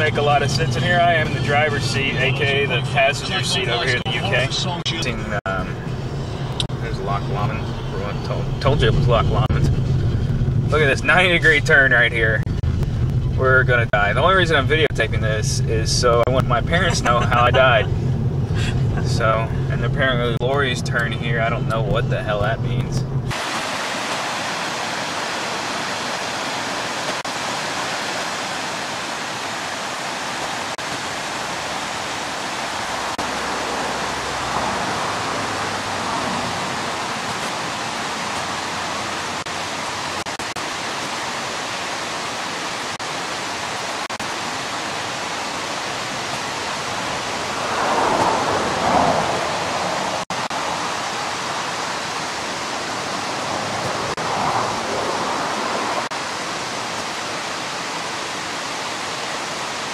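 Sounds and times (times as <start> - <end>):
stream water rushing: 23.3 - 59.9.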